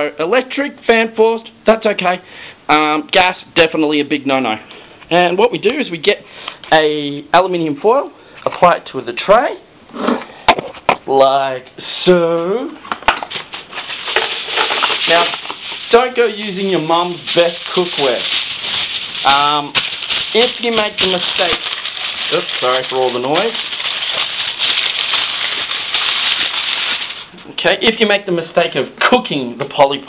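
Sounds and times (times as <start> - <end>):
kitchen foil crinkling: 13.3 - 27.4.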